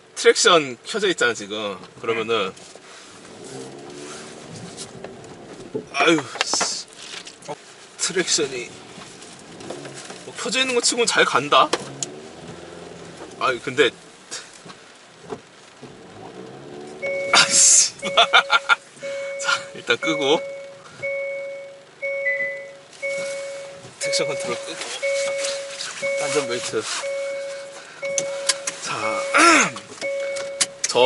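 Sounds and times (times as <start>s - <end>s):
car engine humming: 0.0s - 31.0s
rain pattering on a car: 0.0s - 31.0s
electronic warning chime: 17.0s - 30.8s.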